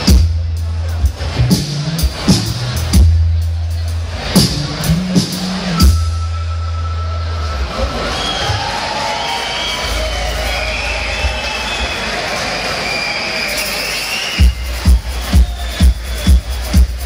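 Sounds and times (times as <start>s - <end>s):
heavy drum beat: 0.0s - 6.2s, 14.4s - 17.0s
live rock band playing: 0.0s - 7.7s
crowd noise: 0.0s - 17.0s.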